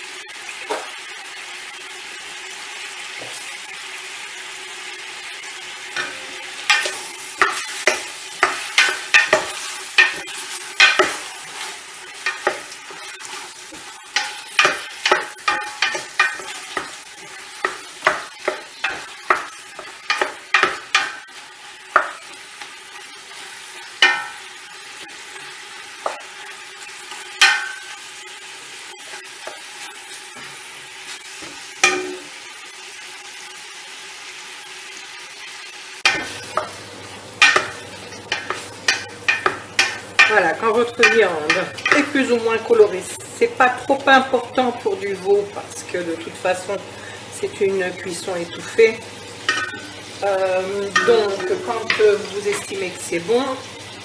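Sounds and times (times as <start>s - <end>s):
meat sizzling in a pot: 0.0s - 54.0s
wooden spoon knocking on pot: 6.0s - 11.2s, 13.8s - 17.0s, 17.6s - 21.2s, 21.9s - 22.2s, 24.0s - 24.4s, 37.4s - 40.4s, 41.0s - 42.2s.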